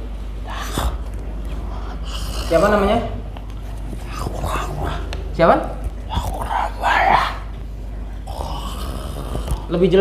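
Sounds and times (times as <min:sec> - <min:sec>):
steady low hum: 0:00.0 - 0:10.0
man making wordless vocal sounds: 0:00.5 - 0:03.2, 0:04.0 - 0:07.5.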